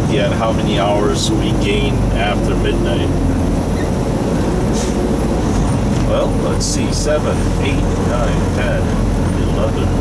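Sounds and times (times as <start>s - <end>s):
truck engine rumble: 0.0s - 10.0s.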